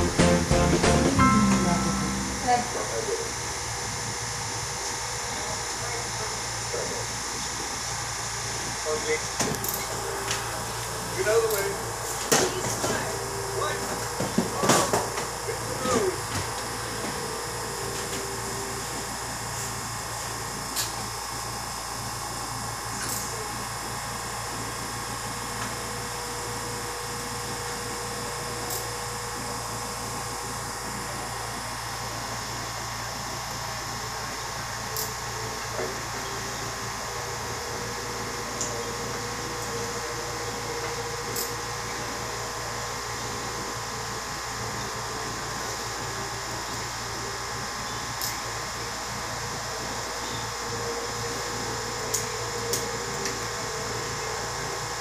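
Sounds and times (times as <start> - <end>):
dental instrument whining: 2.7 - 21.1, 34.2 - 55.0.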